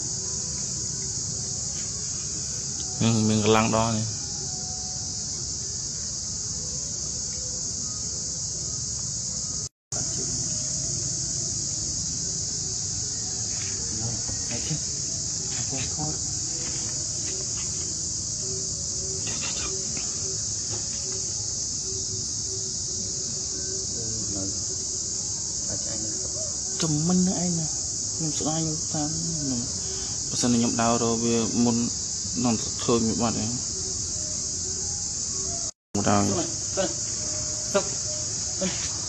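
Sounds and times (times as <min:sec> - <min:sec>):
insect chorus drone: 0:00.0 - 0:39.0.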